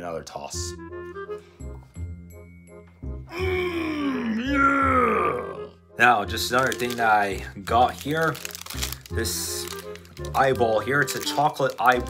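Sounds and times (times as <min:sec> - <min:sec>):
background music with steady beat: 0:00.1 - 0:08.0
man's drawn-out vocal exclamation: 0:03.3 - 0:05.8.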